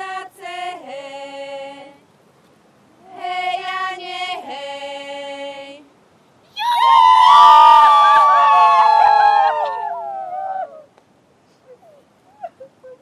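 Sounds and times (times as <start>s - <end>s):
women shouting together: 6.6s - 10.8s.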